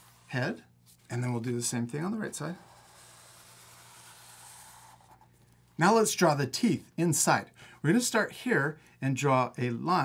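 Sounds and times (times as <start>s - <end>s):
marker scratching on paper: 0.0s - 0.4s, 2.3s - 5.3s.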